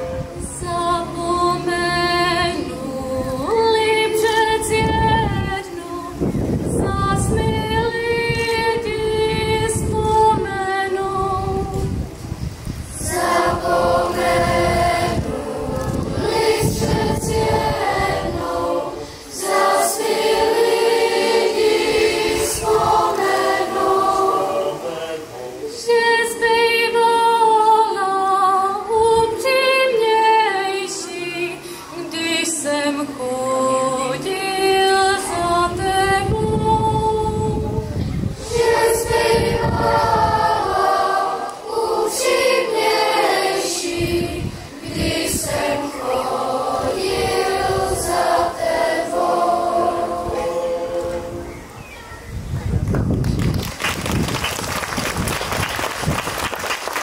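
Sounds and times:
children's choir singing: 0.0 - 12.1, 12.8 - 51.8.

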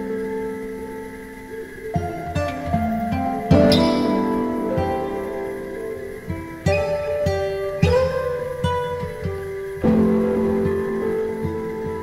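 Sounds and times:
plucked guitar music: 0.0 - 12.0.

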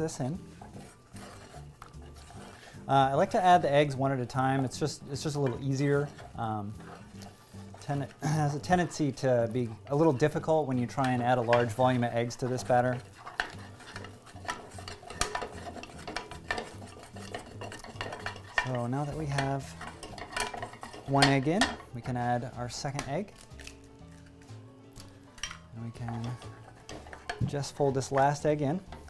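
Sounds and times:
spatula scraping dough in saucepan: 0.0 - 22.5, 25.9 - 29.0.

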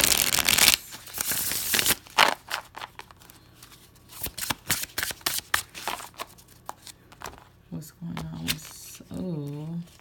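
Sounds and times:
cards being shuffled: 0.0 - 7.5.

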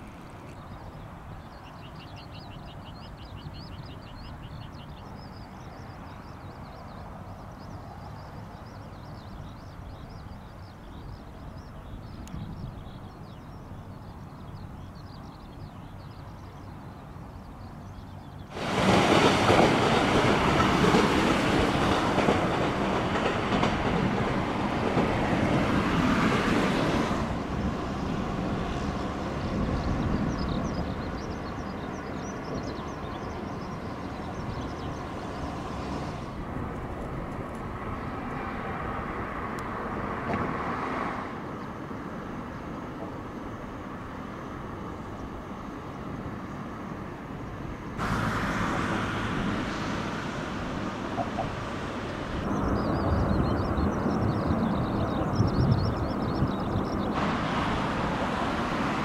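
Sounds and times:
train wheel-on-rail noise: 0.0 - 59.0.

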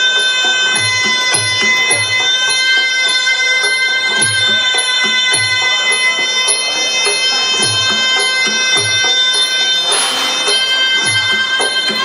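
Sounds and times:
reedy wind instrument note: 0.0 - 12.0.

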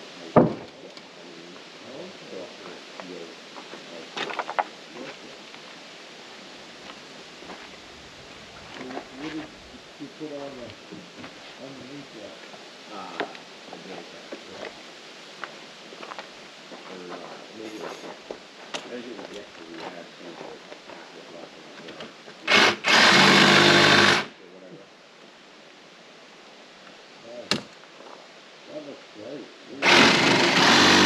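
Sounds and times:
conversation: 0.3 - 31.0
sharp knock: 0.4 - 0.7, 27.5 - 27.7.

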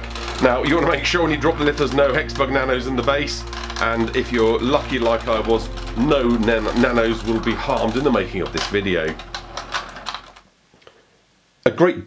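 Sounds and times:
robot bugs rattling on plastic: 0.0 - 10.4.

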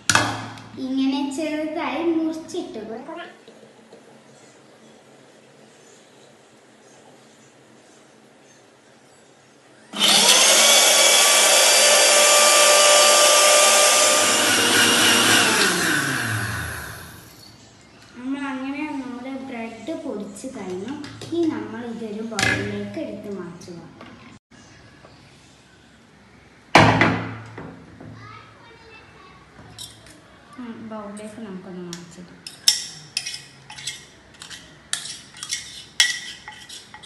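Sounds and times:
mixer grinder motor grinding: 9.9 - 17.4
faint children's voices: 28.0 - 32.0.

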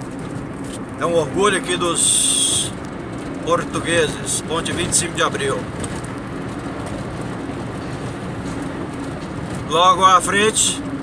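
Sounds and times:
car engine: 0.0 - 11.0.

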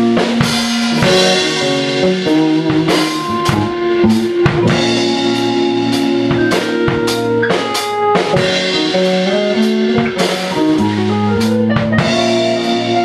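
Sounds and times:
drum strikes: 0.0 - 13.0
live band playing: 0.0 - 13.0.

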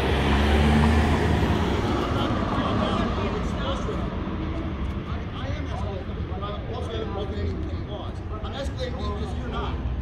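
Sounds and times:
truck engine driving past: 0.0 - 3.4.

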